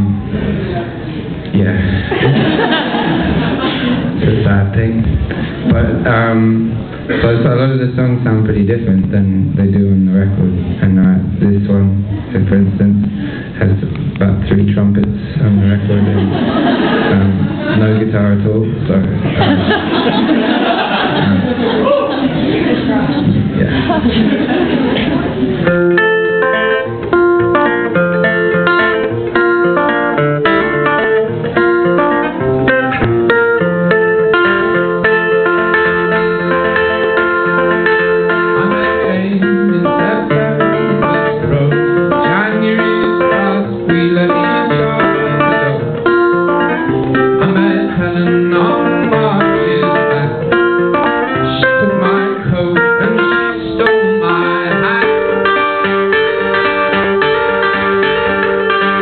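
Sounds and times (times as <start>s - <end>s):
acoustic guitar picking: 0.0s - 59.0s.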